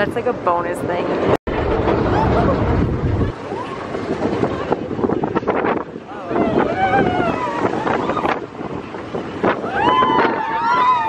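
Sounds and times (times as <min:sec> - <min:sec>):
ride vehicle rumble: 0:00.0 - 0:11.0
wind rushing over microphone: 0:00.0 - 0:11.0.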